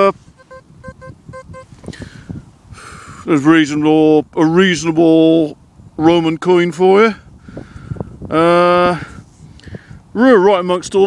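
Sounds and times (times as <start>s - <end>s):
metal detector short beeps: 0.0s - 2.0s.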